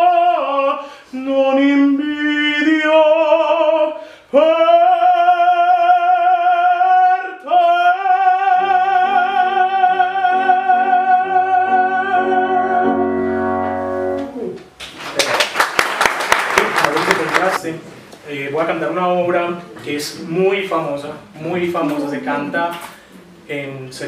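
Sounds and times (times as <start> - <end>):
male operatic singing: 0.0 - 13.2
piano chords: 8.4 - 14.8
applause: 14.8 - 17.6.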